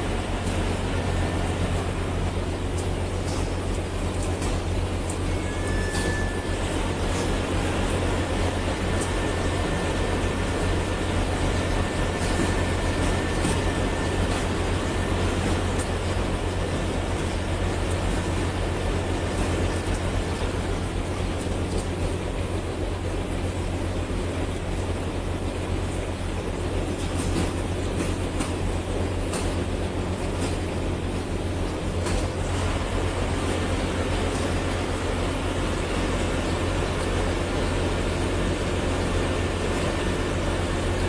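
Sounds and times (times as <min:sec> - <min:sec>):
production line machinery humming: 0:00.0 - 0:41.0.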